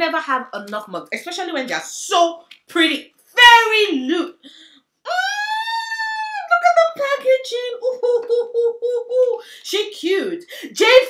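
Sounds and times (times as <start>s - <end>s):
woman cooing ooh in delight: 7.7s - 9.4s.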